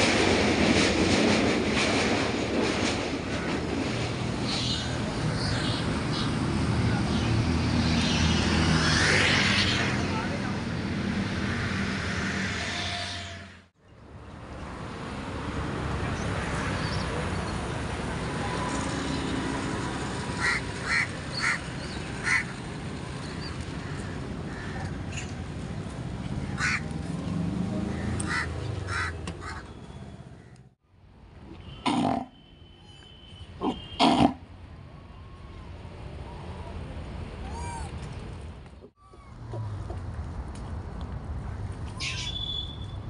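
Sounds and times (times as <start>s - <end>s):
low traffic rumble: 0.0s - 43.0s
harsh animal calls: 12.4s - 13.6s.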